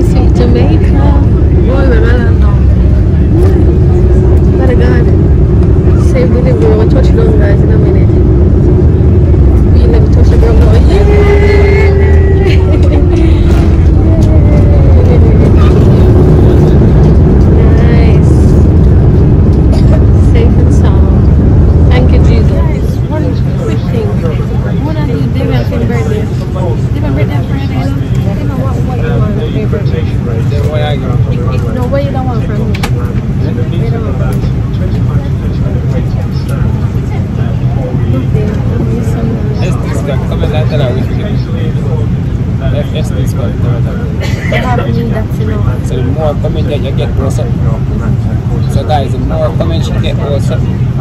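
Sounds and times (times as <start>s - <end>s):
falling engine whine: 0.0s - 51.0s
jet engines and runway rumble: 0.0s - 51.0s
voices in cabin: 0.0s - 51.0s.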